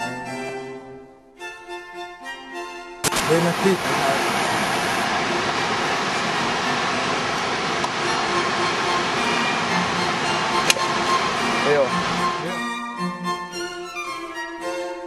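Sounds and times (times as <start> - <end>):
outdoor rushing noise: 3.0 - 12.5.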